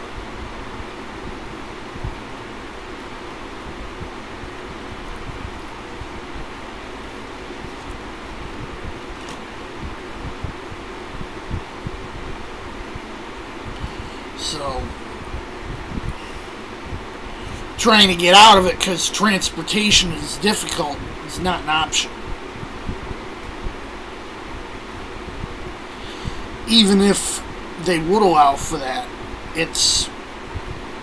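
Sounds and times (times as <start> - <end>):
air buffeting microphone: 0.0 - 31.0
room fan running: 0.0 - 31.0.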